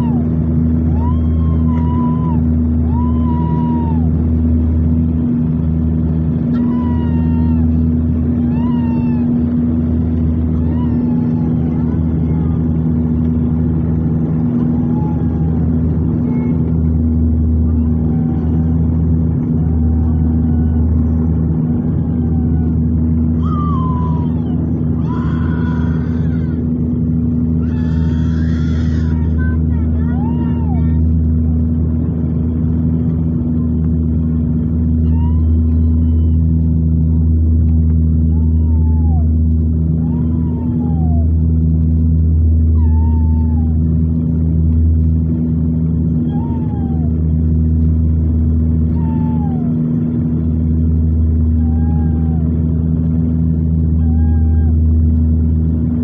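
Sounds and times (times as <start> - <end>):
propeller engine drone in cabin: 0.0 - 56.0
faint gliding squeals: 14.4 - 31.0.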